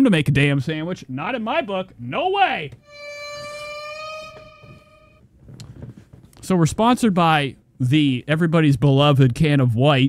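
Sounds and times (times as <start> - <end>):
steady horn-like tone: 2.8 - 5.2.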